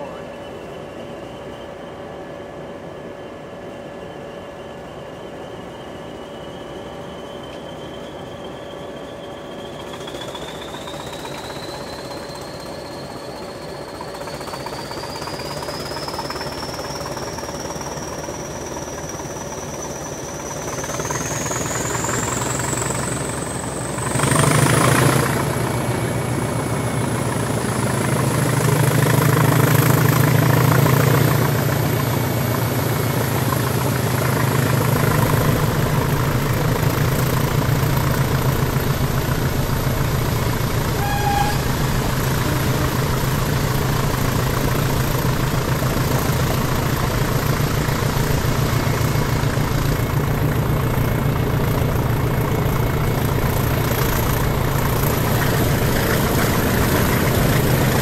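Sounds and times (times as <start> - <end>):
diesel locomotive engine rumble: 0.0 - 58.0
turbocharger whine: 0.0 - 58.0.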